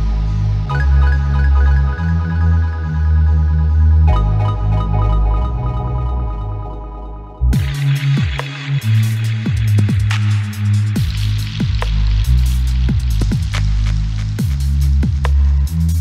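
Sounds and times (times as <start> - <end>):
electronic music with bass and kicks: 0.0 - 16.0.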